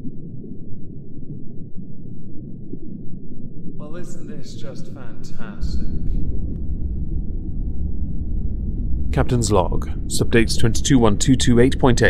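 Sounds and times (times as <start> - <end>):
deep muffled rumbling: 1.2 - 12.0
person speaking: 3.8 - 6.1, 9.2 - 12.0.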